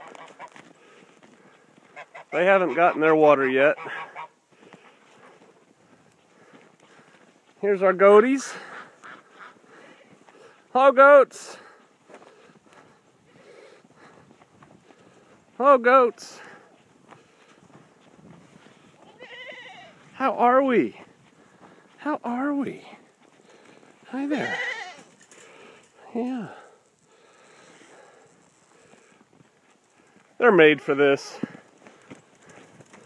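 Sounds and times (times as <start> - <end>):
faint geese and ducks calling: 0.0 - 10.6
goat bleating: 19.0 - 20.2, 24.1 - 25.1.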